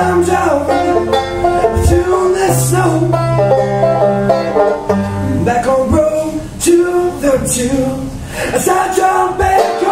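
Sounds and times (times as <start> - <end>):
banjo picking: 0.0 - 7.9, 8.6 - 9.9
acoustic guitar accompaniment: 0.0 - 9.9.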